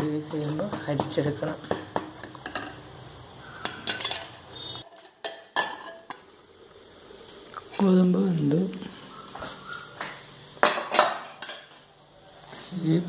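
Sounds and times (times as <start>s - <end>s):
metal ladle clinking on pan: 3.6s - 6.2s.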